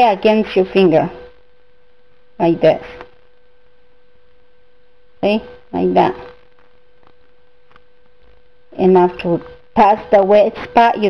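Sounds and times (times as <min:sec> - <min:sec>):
faint high electrical hum: 0:00.0 - 0:11.0.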